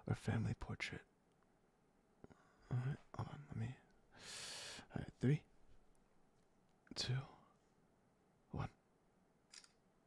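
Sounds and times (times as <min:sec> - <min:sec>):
man counting softly: 0:00.0 - 0:01.1, 0:02.6 - 0:03.9, 0:04.8 - 0:05.6, 0:06.9 - 0:07.6, 0:08.5 - 0:08.8.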